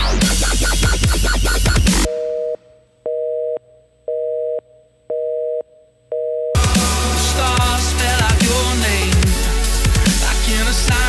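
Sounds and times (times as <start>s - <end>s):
dubstep music with heavy bass: 0.0s - 2.1s, 6.6s - 11.0s.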